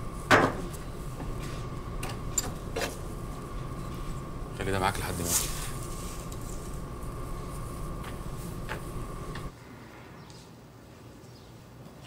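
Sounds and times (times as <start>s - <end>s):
steady background hum: 0.0s - 11.1s.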